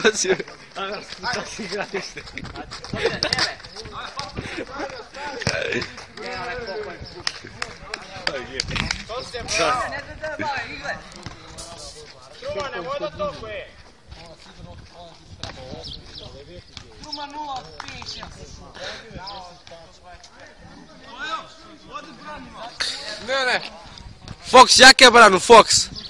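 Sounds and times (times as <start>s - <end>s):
football thudding on asphalt: 4.9s - 6.2s.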